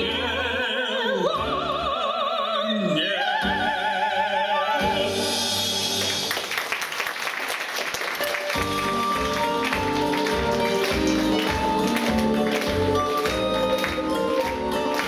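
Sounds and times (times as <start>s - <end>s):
audience applause: 6.0s - 15.0s
sung duet: 8.6s - 15.0s.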